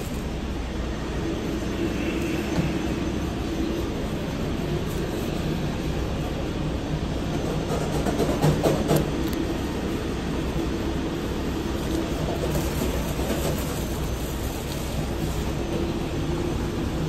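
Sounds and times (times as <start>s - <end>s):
kitchen equipment and ventilation hum: 0.0s - 17.0s.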